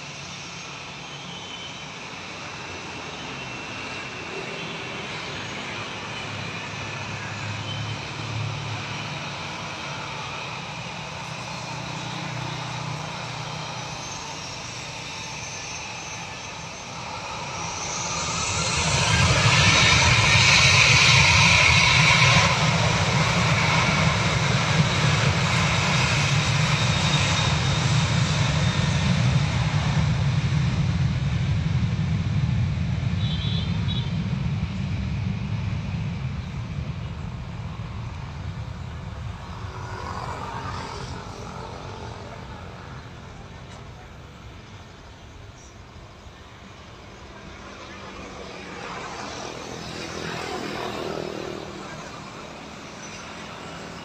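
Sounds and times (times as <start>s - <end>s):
jet engines roaring at takeoff: 0.0s - 54.0s.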